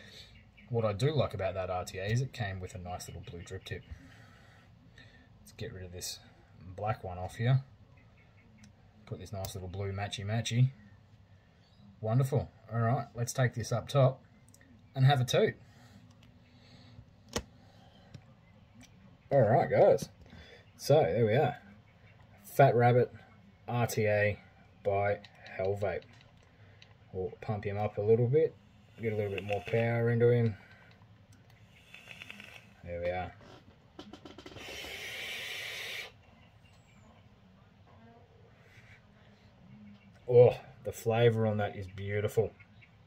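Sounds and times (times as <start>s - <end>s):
air hissing through vape tank: 28.8s - 30.0s, 31.6s - 32.8s, 34.5s - 36.2s.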